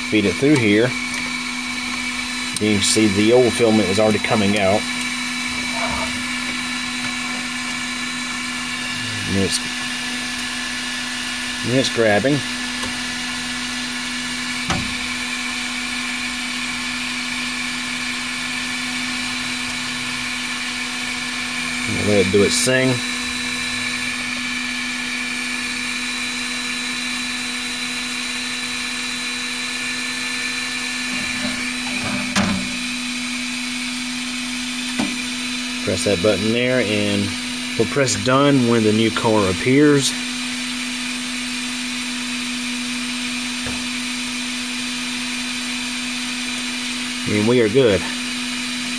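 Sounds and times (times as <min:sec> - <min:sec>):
printer machine hum: 0:00.0 - 0:41.1
high fan and motor whines: 0:00.0 - 0:48.9.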